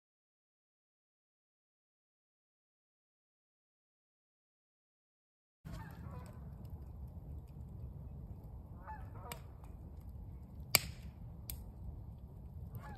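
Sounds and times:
geese honking: 5.7 - 6.4, 8.8 - 9.6
burning wood popping: 5.7 - 8.7, 9.3 - 12.7
wood fire rumbling: 5.7 - 12.9.

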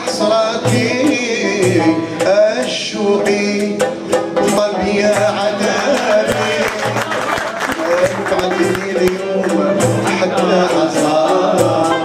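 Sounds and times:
hand drums beating: 0.0 - 12.0
man singing: 0.0 - 12.0.

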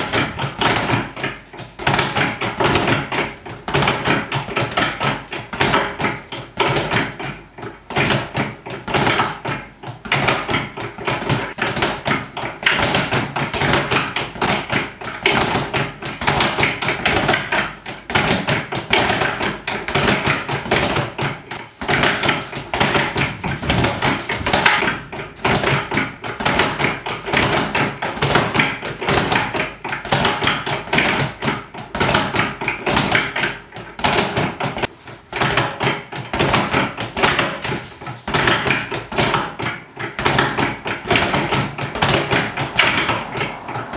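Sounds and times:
speed bag punching: 0.0 - 43.9.

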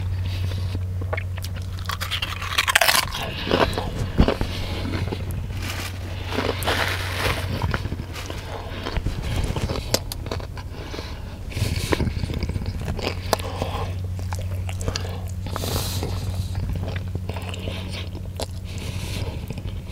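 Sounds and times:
biting a sandwich: 0.0 - 19.9
low steady hum: 0.0 - 19.9
crunching tortilla chips: 0.3 - 19.9.

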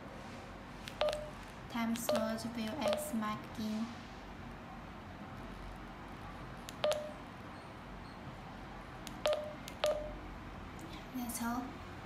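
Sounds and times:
button clicks: 2.0 - 3.1, 6.7 - 7.2.

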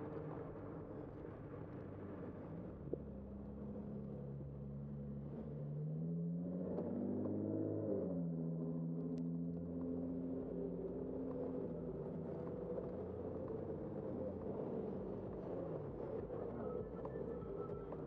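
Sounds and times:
road and wind noise rumble: 0.0 - 18.0
motor vehicle engine accelerating: 0.1 - 18.0.

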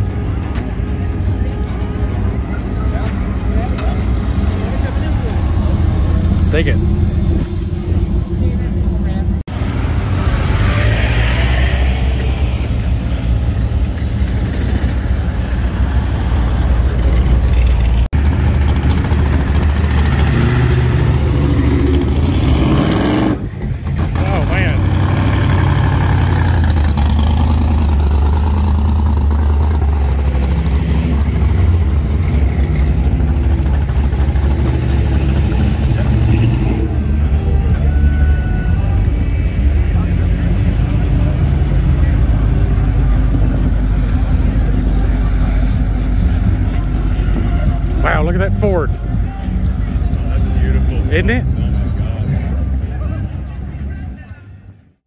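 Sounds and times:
cars rumbling past slowly: 0.0 - 54.9
crowd voices: 0.0 - 55.0.

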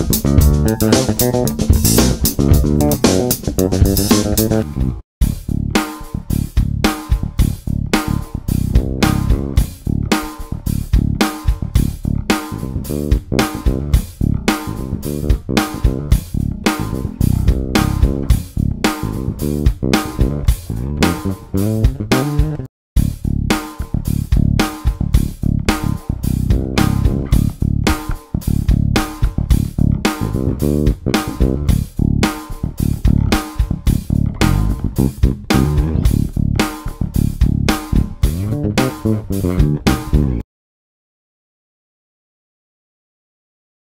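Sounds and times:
drum beat: 0.0 - 4.7, 5.3 - 40.4
electric bass rhythmic line: 0.0 - 40.4.

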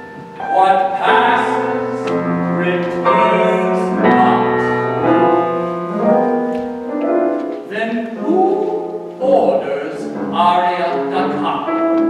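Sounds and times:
solo piano playing: 0.0 - 12.0.

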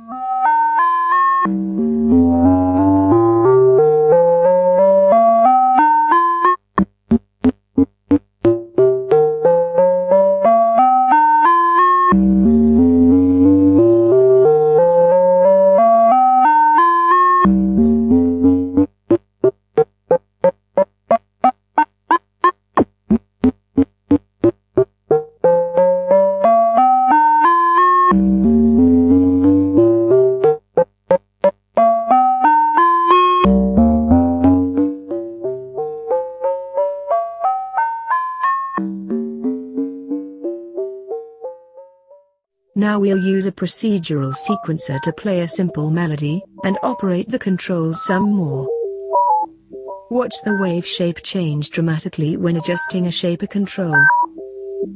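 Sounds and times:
synthesizer rising scales: 1.4 - 4.1.

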